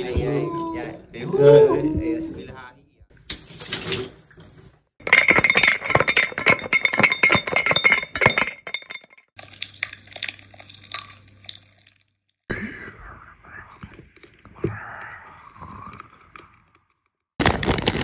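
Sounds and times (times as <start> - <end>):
dense clinking clatter: 5.0 - 9.3.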